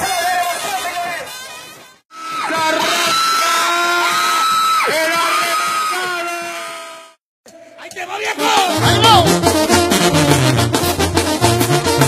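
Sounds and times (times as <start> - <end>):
music: 7.9 - 12.0.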